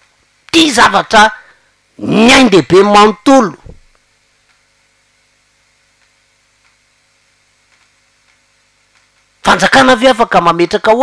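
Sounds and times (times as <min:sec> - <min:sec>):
faint small clicks: 0:03.9 - 0:04.7, 0:05.9 - 0:06.8, 0:07.6 - 0:09.3.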